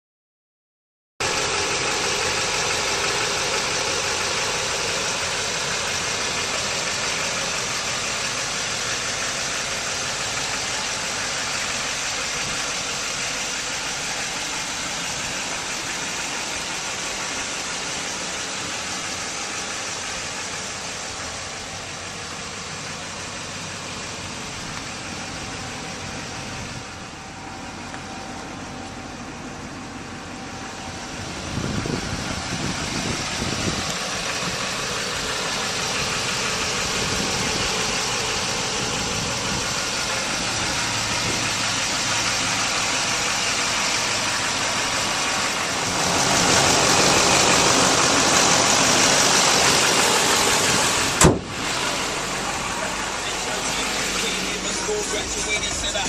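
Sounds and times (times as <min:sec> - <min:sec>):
diesel engine idling: 0:01.2 - 0:56.0.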